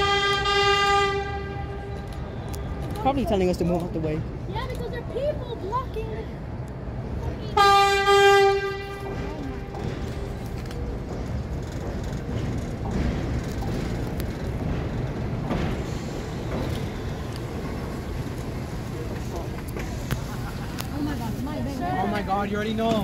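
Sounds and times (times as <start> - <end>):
train wheels rumbling on rails: 0.0 - 23.0
crowd voices: 1.4 - 23.0.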